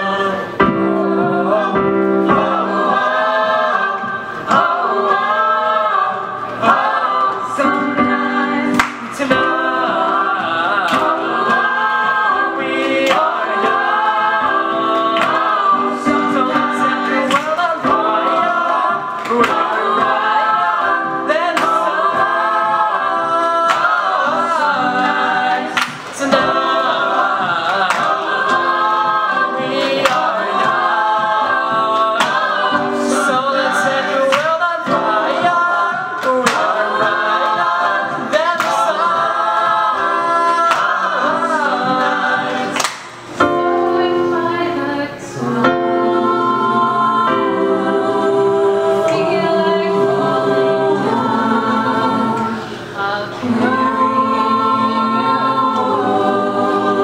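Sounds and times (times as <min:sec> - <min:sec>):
mixed choir singing pop song: 0:00.0 - 0:57.0.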